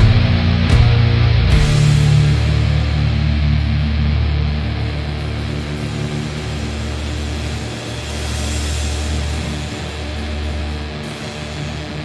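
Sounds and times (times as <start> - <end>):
metal band playing: 0.0 - 12.0.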